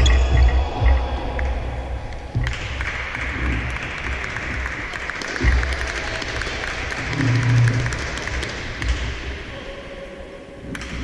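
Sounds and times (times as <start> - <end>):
audience clapping: 2.1 - 9.2.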